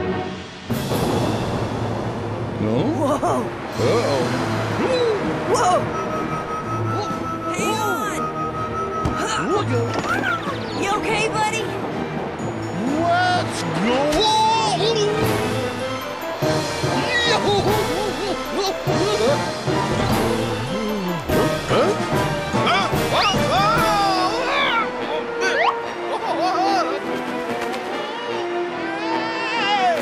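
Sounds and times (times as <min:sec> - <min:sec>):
background film music: 0:00.0 - 0:30.0
cartoon music with held notes: 0:03.8 - 0:11.4.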